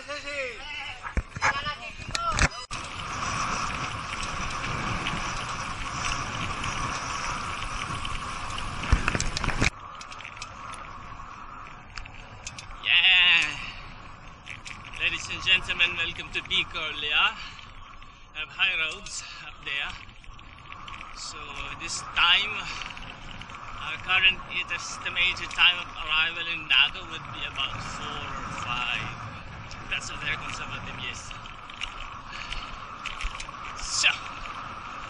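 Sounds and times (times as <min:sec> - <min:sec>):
bicycle road noise: 0:00.0 - 0:35.0
wind rushing on microphone: 0:00.0 - 0:35.0.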